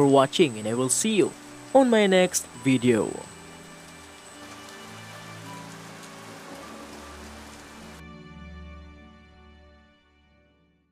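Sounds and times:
steady rain falling: 0.0s - 8.7s
soft music of held notes: 0.0s - 10.8s.

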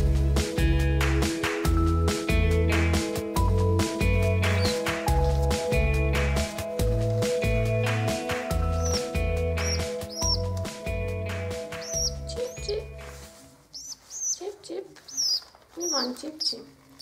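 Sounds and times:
pigeon squab squeaky peeps: 4.4s - 5.0s, 8.7s - 10.6s, 11.6s - 13.0s, 13.7s - 17.0s.

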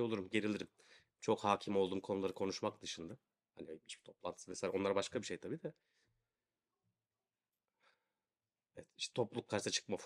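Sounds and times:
man speaking: 0.0s - 5.8s.

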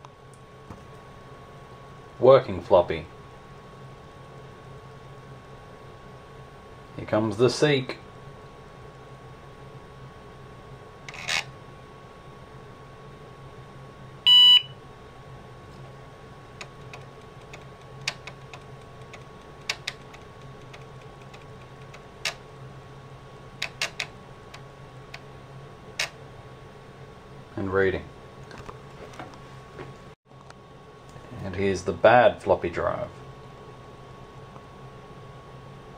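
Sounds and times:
computer hum: 0.0s - 35.9s
computer speaker beep: 14.3s - 14.7s.

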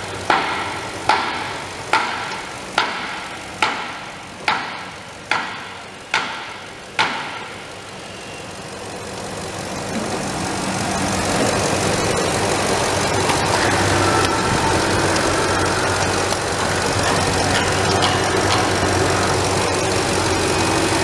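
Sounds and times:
truck engine idling: 0.0s - 21.0s.

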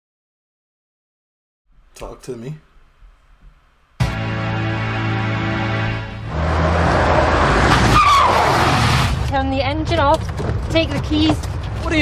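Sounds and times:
car tyres skidding on road: 6.2s - 9.3s
tyre squeal: 6.4s - 9.2s.

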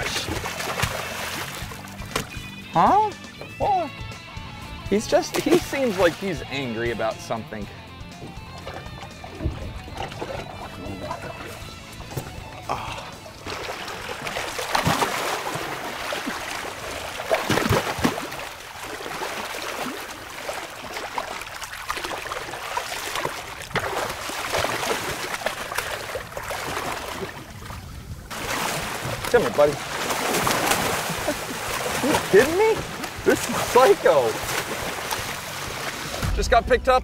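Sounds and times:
sharp water slaps: 0.0s - 2.5s, 5.0s - 7.1s, 13.4s - 36.4s
background music: 0.0s - 14.7s
water splashing and churning: 0.0s - 36.7s.

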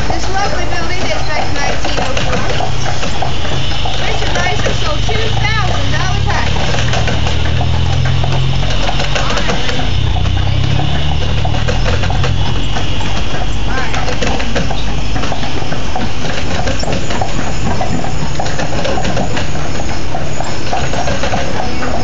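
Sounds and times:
horse hooves clip-clopping: 0.0s - 22.0s
low engine hum: 0.0s - 22.0s.

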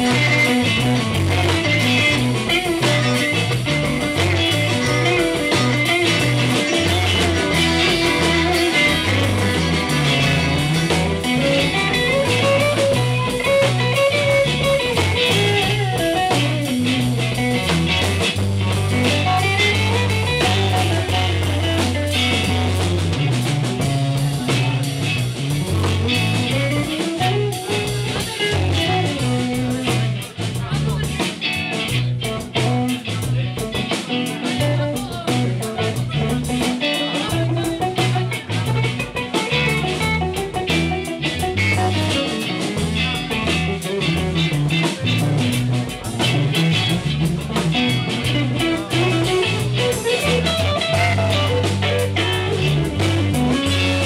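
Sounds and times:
live blues band playing: 0.0s - 54.0s
melodic guitar line bending: 0.0s - 54.0s.

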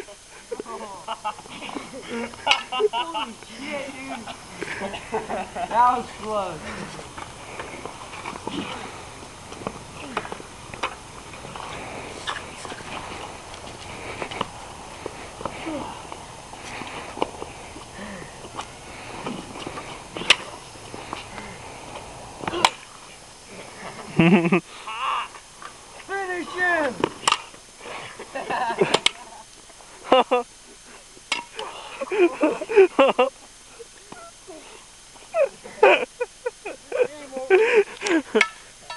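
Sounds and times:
faint voices: 5.7s - 24.1s
high-pitched laughter: 35.3s - 38.4s.

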